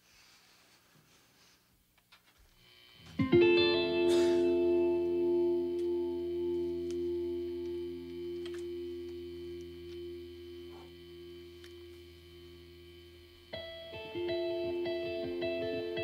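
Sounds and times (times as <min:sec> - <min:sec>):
low amplifier hum: 0:01.8 - 0:16.0
electric band chord ringing: 0:03.0 - 0:16.0.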